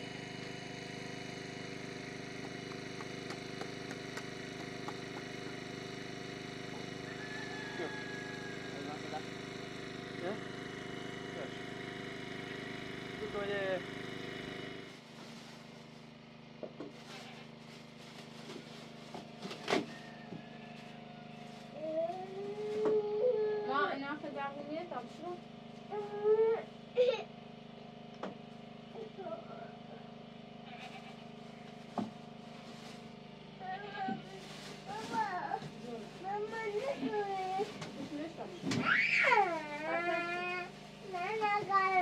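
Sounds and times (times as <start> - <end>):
steady low hum: 0.0 - 19.7
small child talking: 21.8 - 23.9, 29.0 - 29.7, 34.9 - 37.7, 39.2 - 42.0
woman talking: 23.5 - 25.4, 35.8 - 38.8.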